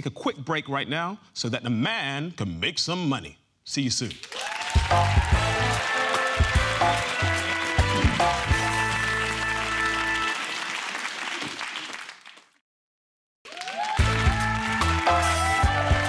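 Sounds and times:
studio audience applause: 0:04.1 - 0:12.6, 0:13.4 - 0:16.0
tv theme music: 0:04.7 - 0:10.6, 0:14.0 - 0:16.0.

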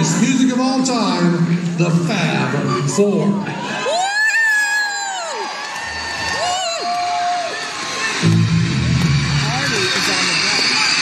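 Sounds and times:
audience screaming and cheering: 0:02.2 - 0:11.0
live rock band playing: 0:08.0 - 0:11.0.

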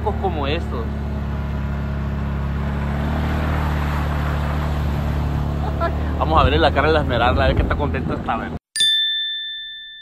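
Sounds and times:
vehicle engine running: 0:00.0 - 0:08.6.

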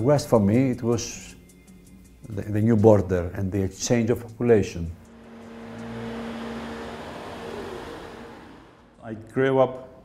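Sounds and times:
car driving past: 0:05.0 - 0:09.0.

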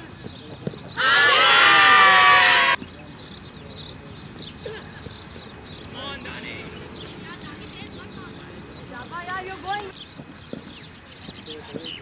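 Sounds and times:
birds chirping faintly: 0:00.0 - 0:12.0
players shouting: 0:01.0 - 0:02.8.

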